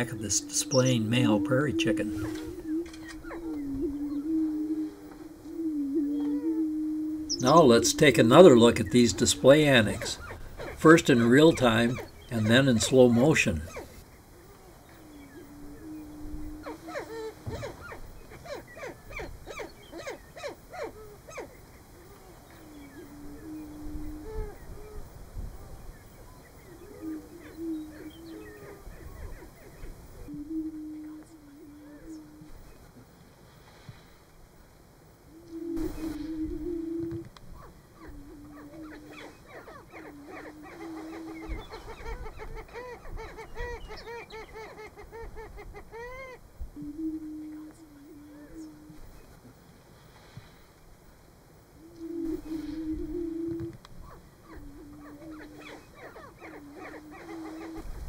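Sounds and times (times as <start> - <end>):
birds chattering: 0.0 - 32.8, 35.5 - 46.4, 51.9 - 57.9.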